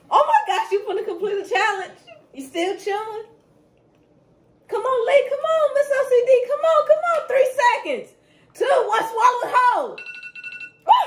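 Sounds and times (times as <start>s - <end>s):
timer alarm beeping: 10.0s - 10.9s.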